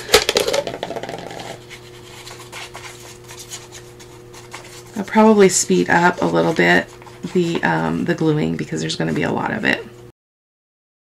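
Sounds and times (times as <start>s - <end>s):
paper and card handling: 0.0s - 7.7s
faint steady hum: 0.0s - 10.1s.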